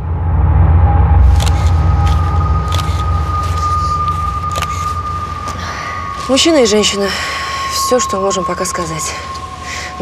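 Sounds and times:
low vehicle rumble: 0.0 - 10.0
faint high whine: 0.1 - 10.0.

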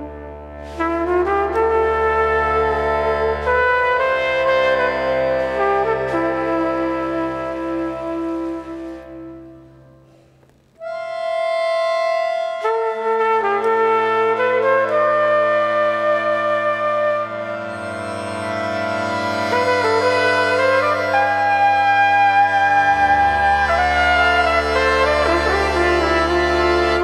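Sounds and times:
trumpet and accordion playing: 0.6 - 9.5, 10.8 - 27.0.

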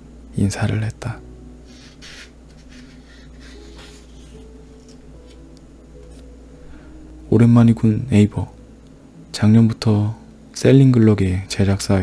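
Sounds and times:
paper page rustling: 1.7 - 5.4.

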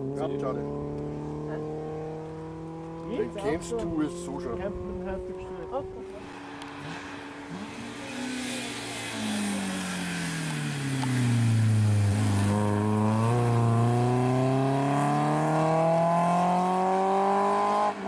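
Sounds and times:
rally car engine slowing and accelerating: 0.0 - 18.0.

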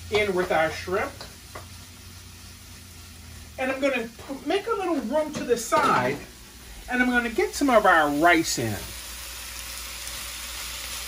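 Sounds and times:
food sizzling in a wok: 0.0 - 11.0.

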